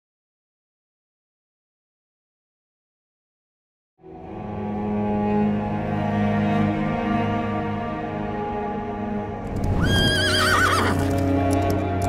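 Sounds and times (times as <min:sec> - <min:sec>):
background music: 0:04.0 - 0:12.0
horse whinnying: 0:09.6 - 0:11.2
galloping hoofbeats: 0:09.6 - 0:12.0.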